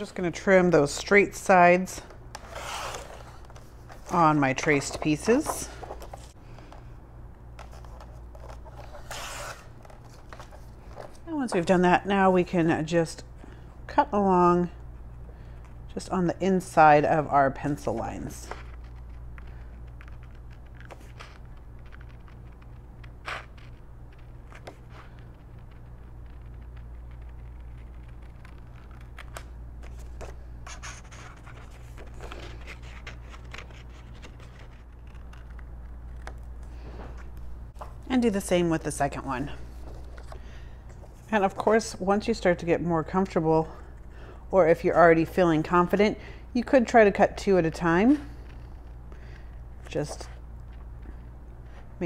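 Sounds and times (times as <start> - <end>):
steady low hum: 0.0 - 52.0
paper rustling and scratching: 2.3 - 6.8, 7.6 - 11.8, 17.2 - 39.0
paper scraping on trimmer: 2.4 - 3.5.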